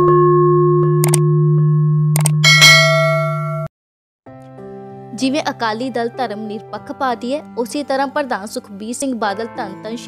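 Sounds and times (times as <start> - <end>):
short clicks: 1.0 - 1.2
bell-like chime: 2.4 - 3.7.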